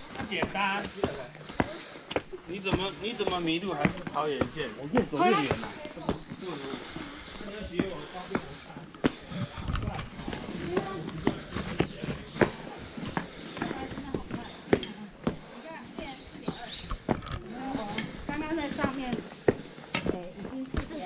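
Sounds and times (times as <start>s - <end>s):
footsteps on stone steps: 0.0s - 21.0s
people talking: 2.7s - 12.8s, 13.4s - 19.2s, 20.0s - 21.0s.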